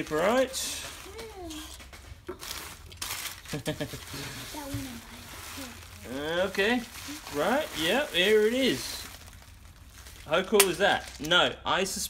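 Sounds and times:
newspaper packing rustling: 0.0s - 11.4s.

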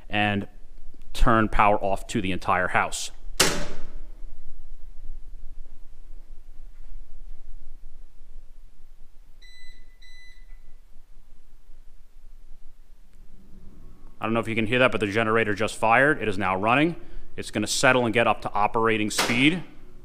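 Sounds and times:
faint low rumble: 0.0s - 17.4s.

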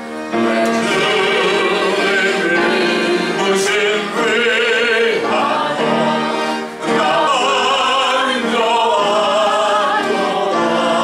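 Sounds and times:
man singing a hymn operatically: 0.6s - 11.0s.

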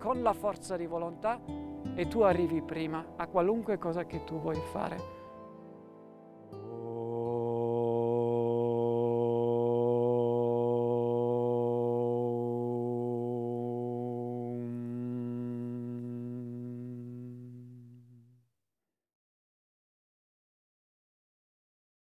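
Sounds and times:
low voice chanting om: 6.6s - 18.4s.

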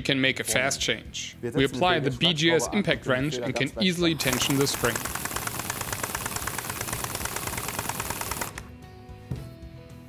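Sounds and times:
quiet background music: 0.0s - 10.0s
impact wrench hammering: 4.3s - 8.6s.

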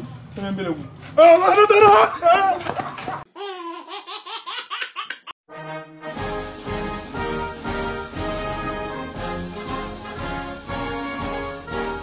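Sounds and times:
person laughing: 1.4s - 3.2s.

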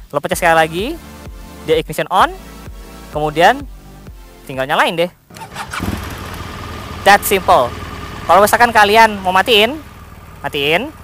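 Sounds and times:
motorcycle engine starting and idling: 5.3s - 11.0s.

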